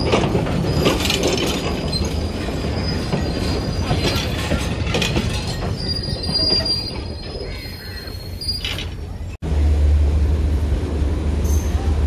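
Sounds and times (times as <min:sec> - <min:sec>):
train knocks: 0:00.0 - 0:07.6
high wheel squeal: 0:00.0 - 0:09.4
train coaches rumbling on track: 0:00.0 - 0:12.0.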